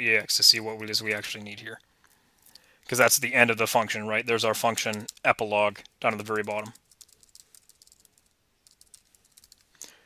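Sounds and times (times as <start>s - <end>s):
faint keyboard typing: 0.8s - 3.1s, 4.6s - 10.0s.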